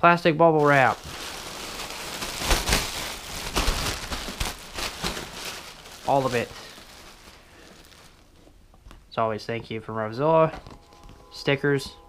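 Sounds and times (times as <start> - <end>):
plastic packaging rustling: 0.6 - 9.0, 10.5 - 11.3.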